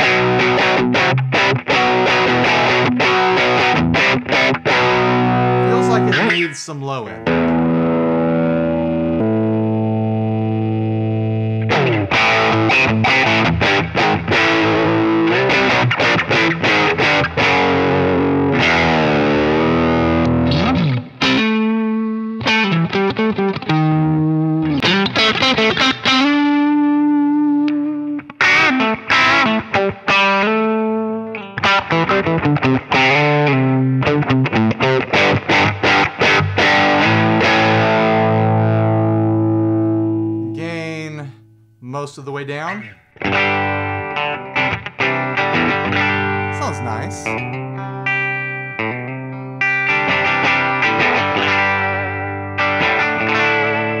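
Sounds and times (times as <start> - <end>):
distorted electric guitar: 0.0 - 6.5, 7.2 - 41.6, 42.6 - 54.0.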